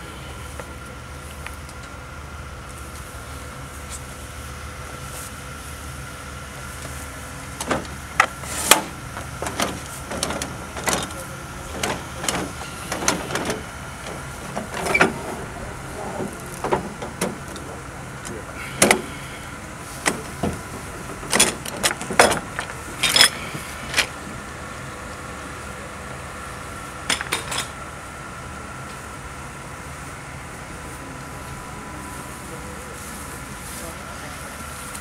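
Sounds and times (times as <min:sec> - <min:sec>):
low motor hum: 0:00.0 - 0:35.0
metallic clicks and clanks: 0:07.6 - 0:19.1, 0:20.0 - 0:24.1.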